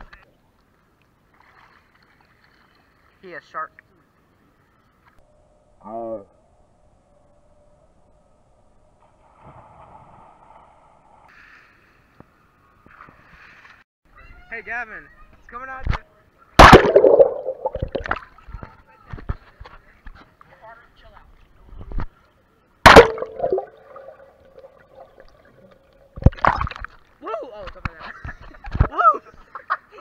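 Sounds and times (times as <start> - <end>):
water splashing: 16.6 - 18.4, 22.9 - 27.2.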